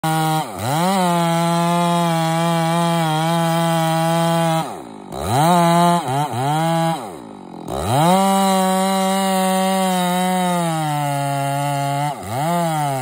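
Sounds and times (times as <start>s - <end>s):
chainsaw cutting tree: 0.0s - 13.0s.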